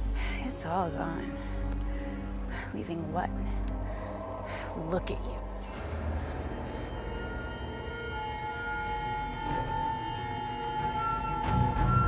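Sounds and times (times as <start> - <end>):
tense film score drone: 0.0 - 12.0.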